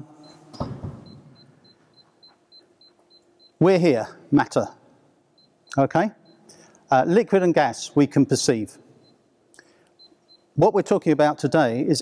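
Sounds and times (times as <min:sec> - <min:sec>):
high-pitched electronic beeps: 0:00.0 - 0:03.6.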